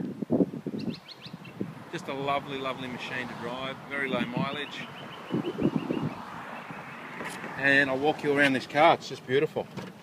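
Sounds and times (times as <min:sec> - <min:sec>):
small bird chirping: 0:00.7 - 0:01.6, 0:04.6 - 0:07.1.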